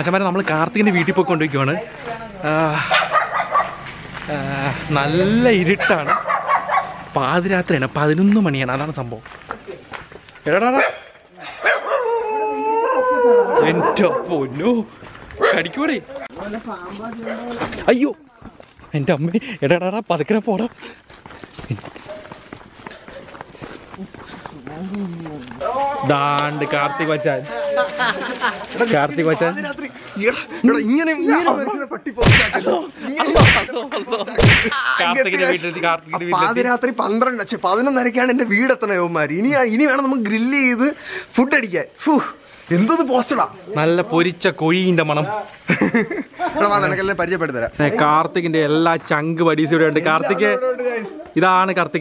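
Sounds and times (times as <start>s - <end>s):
men talking excitedly: 0.0s - 3.2s, 4.1s - 6.4s, 7.0s - 11.2s, 13.1s - 21.0s, 23.9s - 52.0s.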